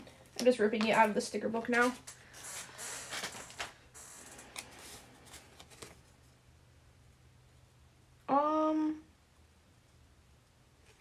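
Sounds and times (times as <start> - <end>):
paper tearing and rustling: 1.8 - 6.0.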